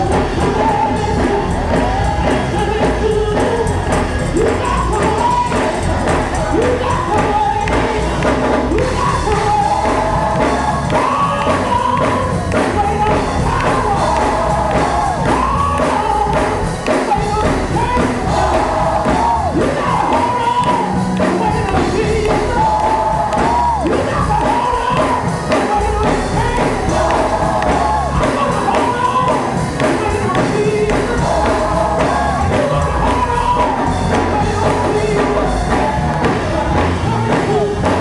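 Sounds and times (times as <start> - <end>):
gospel choir singing: 0.0 - 38.0
loud instrumental accompaniment: 0.0 - 38.0
percussion beat: 0.0 - 38.0.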